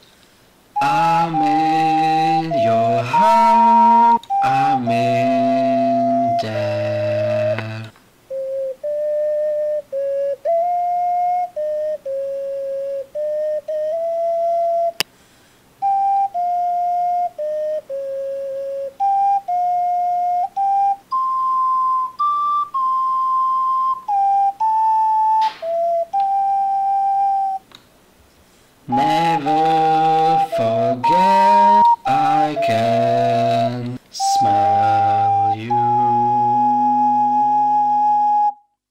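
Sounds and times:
ocarina melody: 0.7s - 15.1s, 15.8s - 27.7s, 28.9s - 38.8s.

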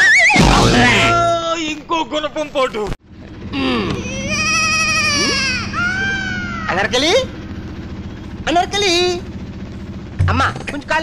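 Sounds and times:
high-pitched crying wail: 3.9s - 7.0s.

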